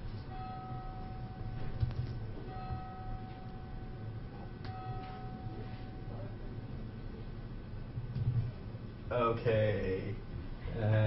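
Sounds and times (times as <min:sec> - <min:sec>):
steady high tone: 0:00.0 - 0:07.8
low hum: 0:00.0 - 0:11.0.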